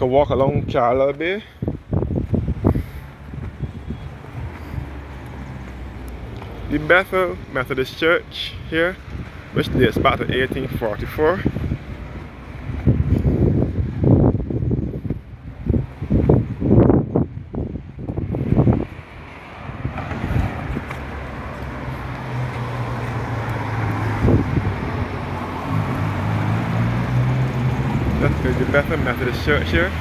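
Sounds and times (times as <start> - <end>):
car engine and tyres humming: 0.0 - 30.0
wind buffeting microphone: 0.0 - 30.0.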